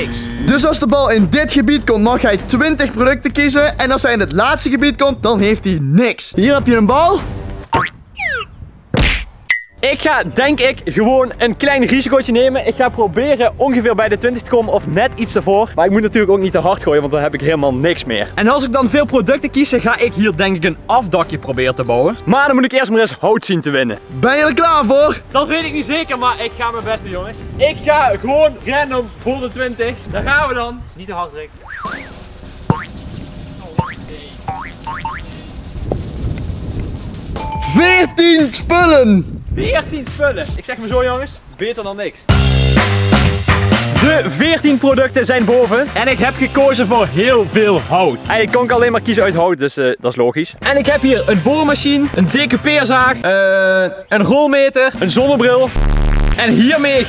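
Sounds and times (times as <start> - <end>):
background music: 0.0 - 8.4, 9.5 - 30.9, 31.6 - 35.8, 37.2 - 41.4, 42.2 - 49.6, 50.5 - 57.0
cartoon boing sound effect: 7.7 - 8.5, 31.6 - 32.9, 33.8 - 35.2
basketball bouncing on grass: 31.7 - 36.2.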